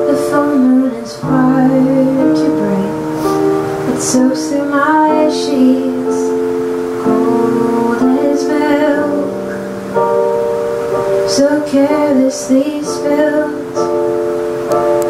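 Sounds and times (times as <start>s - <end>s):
woman singing: 0.0s - 9.7s, 11.1s - 14.2s
electric keyboard: 0.0s - 15.0s.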